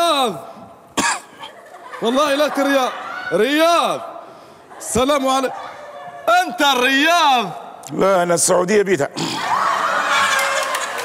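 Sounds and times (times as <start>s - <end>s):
studio audience laughing: 1.4s - 3.2s.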